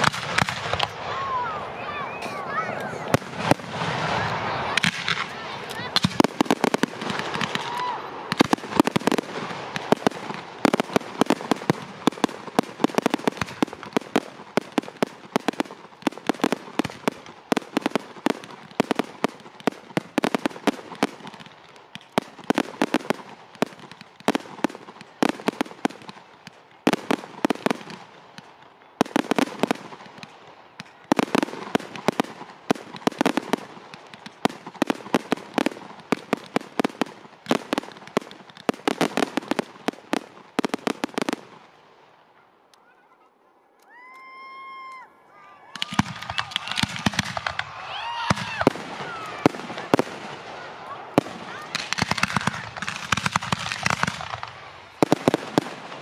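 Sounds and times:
fireworks bangs and crackles: 0.0 - 42.4, 45.7 - 56.0.

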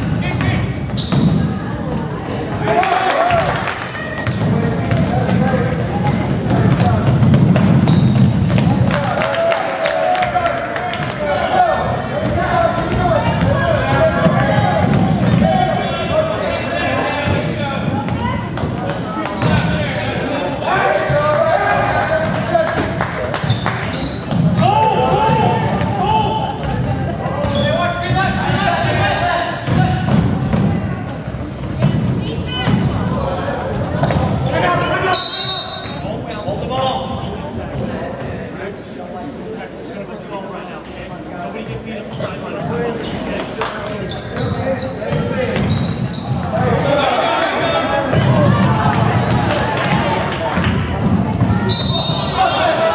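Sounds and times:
voices in a large gym: 0.0 - 52.9
referee's whistle: 34.4 - 36.0, 51.3 - 52.6.

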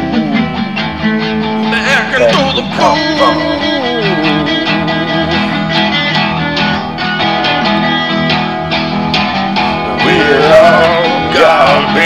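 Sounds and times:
guitar accompaniment: 0.0 - 12.0.

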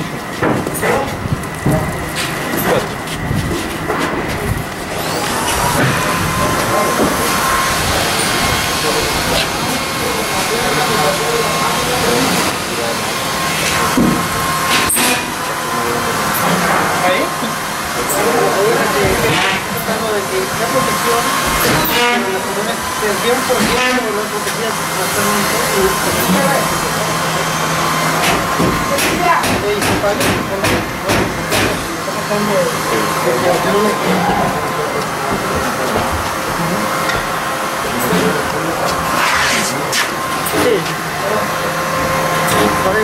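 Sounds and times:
indistinct voices: 0.0 - 43.0
steady machinery noise: 0.0 - 43.0.

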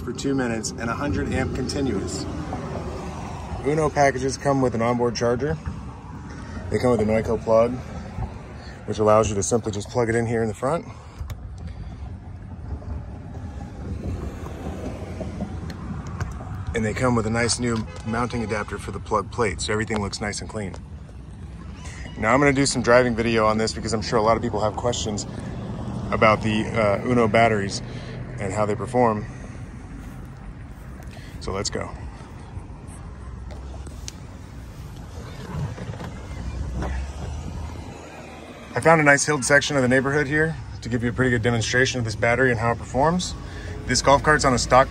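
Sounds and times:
wind buffeting microphone: 0.0 - 17.8, 29.6 - 43.4
wind rumble on microphone: 11.2 - 17.4.

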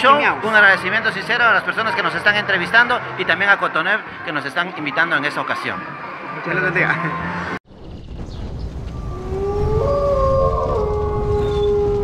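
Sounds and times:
deep steady rumble: 7.8 - 12.0
wolf howls: 8.9 - 12.0.

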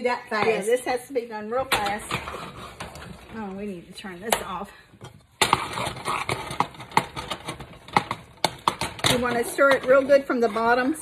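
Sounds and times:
metal spoon scraping a metal pot: 5.4 - 11.0.

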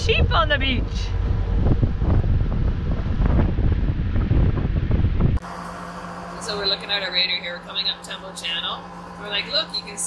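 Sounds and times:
wind buffeting microphone: 0.0 - 5.4
steady low hum: 0.0 - 10.0.

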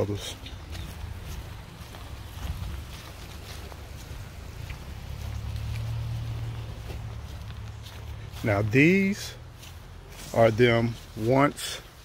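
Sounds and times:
wind rumble on microphone: 0.7 - 5.4.

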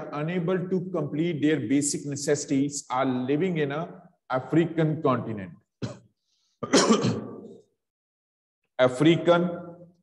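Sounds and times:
man clearing throat: 5.8 - 7.6.

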